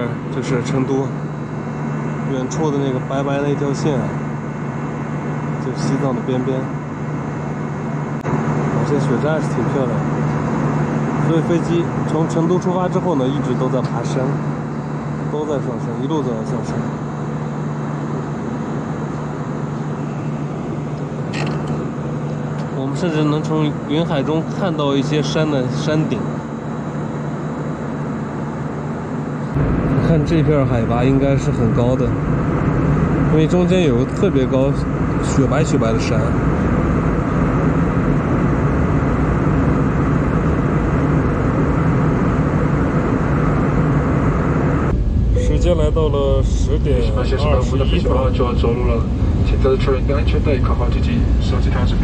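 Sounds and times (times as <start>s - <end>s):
jet engines droning: 0.0s - 52.0s.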